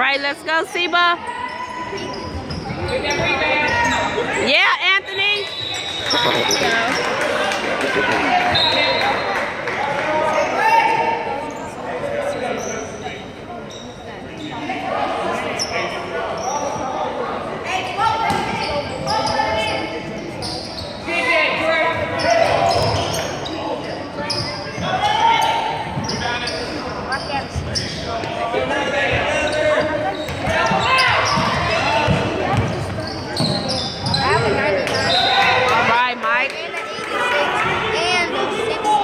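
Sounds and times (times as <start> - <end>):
voices of spectators and players: 0.0 - 39.0
sneakers squeaking: 1.2 - 7.2, 10.2 - 14.8, 18.1 - 35.8.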